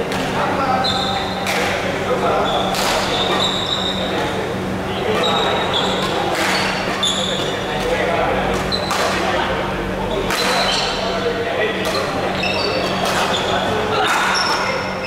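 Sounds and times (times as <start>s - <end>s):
steady low hum: 0.0s - 15.0s
voices chattering: 0.0s - 15.0s
rackets striking shuttlecock: 2.6s - 3.6s, 8.5s - 9.3s, 10.3s - 10.9s, 12.7s - 13.4s.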